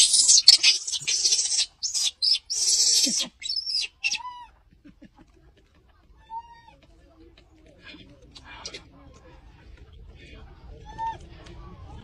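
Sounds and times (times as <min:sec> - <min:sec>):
monkey high calls: 0:00.0 - 0:04.5.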